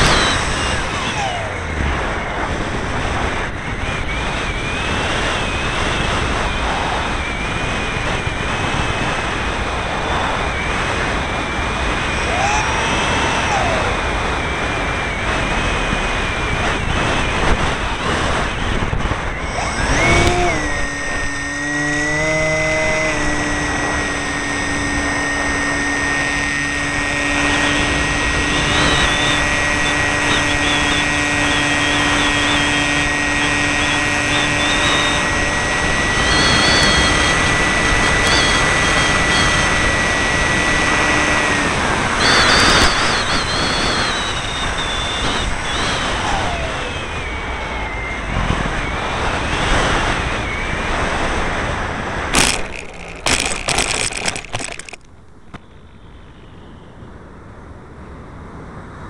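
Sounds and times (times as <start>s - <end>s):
electric motor and propeller whine: 0.0s - 57.2s.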